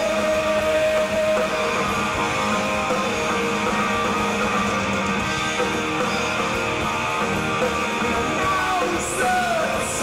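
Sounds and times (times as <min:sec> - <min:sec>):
rock band playing guitars: 0:00.0 - 0:10.0.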